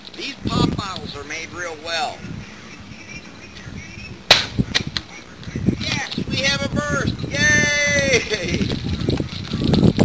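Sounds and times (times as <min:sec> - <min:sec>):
man's voice: 0:00.2 - 0:04.2, 0:05.1 - 0:08.6.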